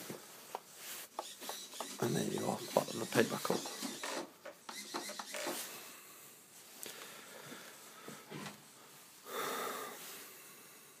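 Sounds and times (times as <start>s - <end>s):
breath near microphone: 5.7s - 8.5s, 9.2s - 11.0s.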